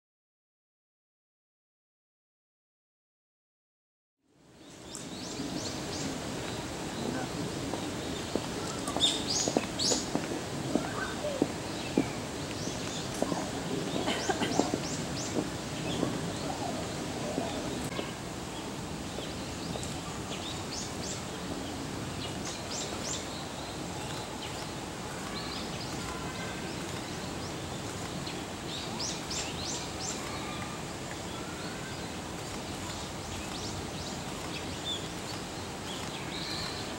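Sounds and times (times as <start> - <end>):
outdoor background noise: 4.2 - 36.9
steady background noise: 4.3 - 36.9.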